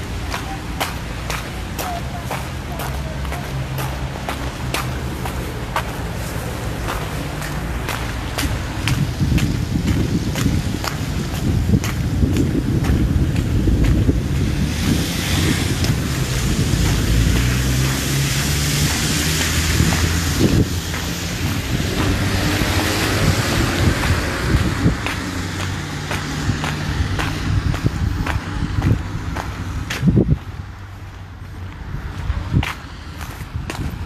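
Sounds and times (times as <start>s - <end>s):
low hum of road traffic: 0.0s - 34.0s
wind buffeting microphone: 3.7s - 34.0s.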